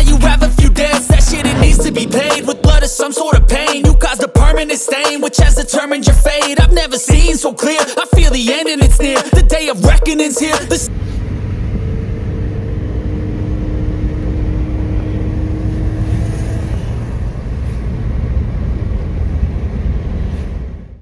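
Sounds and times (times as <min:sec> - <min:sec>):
faint engine hum: 0:10.6 - 0:21.0
road rumble inside car: 0:10.9 - 0:21.0.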